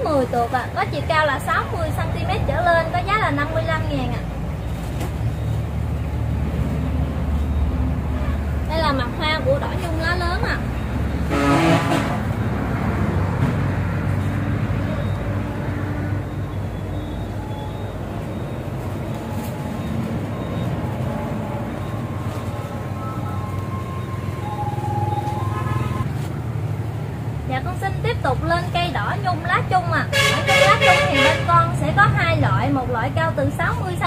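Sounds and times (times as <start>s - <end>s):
background traffic rumble: 0.0s - 34.0s
horn blare: 11.1s - 12.4s, 14.9s - 26.1s, 30.1s - 31.6s.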